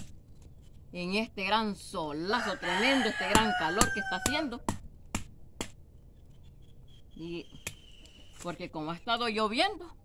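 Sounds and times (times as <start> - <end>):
sharp knocks on seed pods: 3.3 - 5.8.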